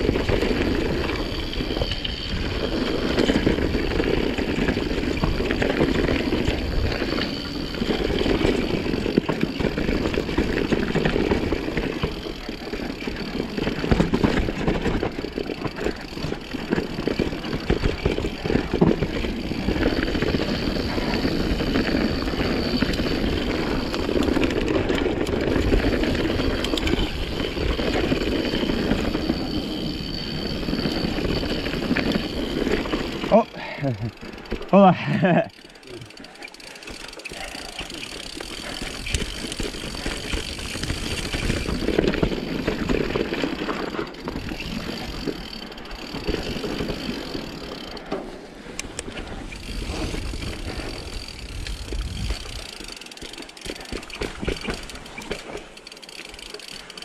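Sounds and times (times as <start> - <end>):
bike rattling: 0.0 - 57.0
bike tyres on dirt trail: 0.0 - 57.0.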